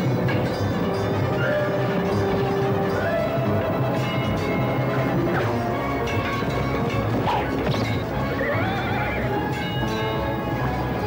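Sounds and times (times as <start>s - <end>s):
dramatic background music: 0.0s - 11.0s
horse neighing: 8.2s - 9.4s.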